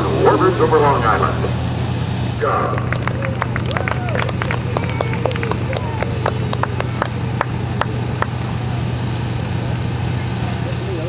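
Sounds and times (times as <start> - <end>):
faint voices: 0.0 - 1.6, 2.4 - 11.0
low engine drone: 0.0 - 11.0.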